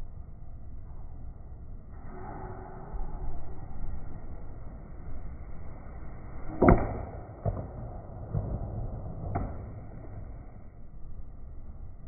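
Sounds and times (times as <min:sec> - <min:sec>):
baseball bat cracking ball: 0:06.6 - 0:10.4.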